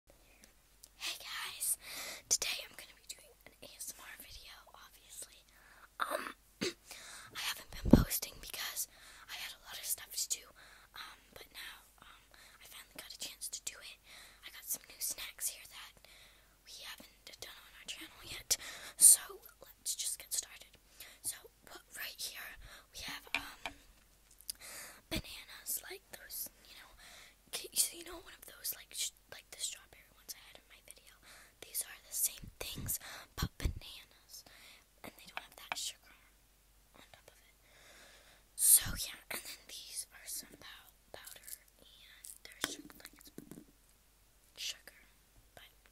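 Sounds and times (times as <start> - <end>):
girl whispering: 1.0 - 6.4, 7.4 - 16.0, 16.6 - 23.8, 24.5 - 36.3, 37.0 - 37.5, 38.6 - 43.4, 44.6 - 45.9.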